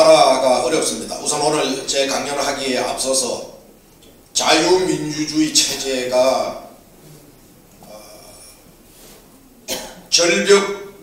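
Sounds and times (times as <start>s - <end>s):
man coughing into microphone: 9.7s - 10.2s.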